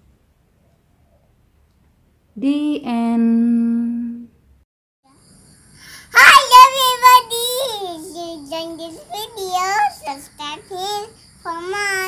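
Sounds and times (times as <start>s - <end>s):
girl talking in sing-song voice: 6.2s - 12.0s.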